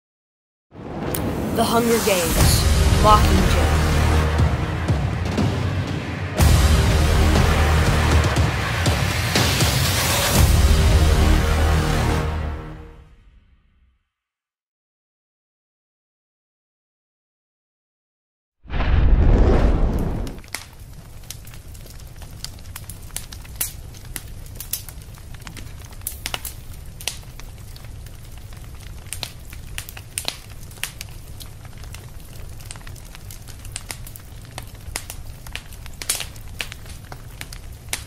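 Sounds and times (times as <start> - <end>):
crackling and pops: 18.7 - 38.0.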